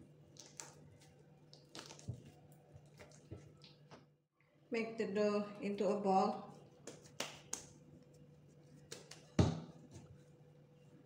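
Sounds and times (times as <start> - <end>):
dough thumping on mat: 8.9 - 10.1.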